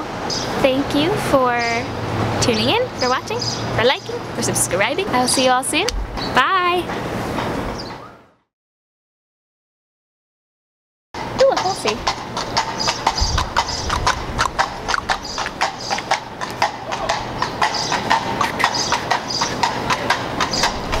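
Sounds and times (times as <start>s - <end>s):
noisy background: 0.0s - 8.2s, 11.2s - 21.0s
voice: 0.6s - 6.9s, 11.4s - 12.0s.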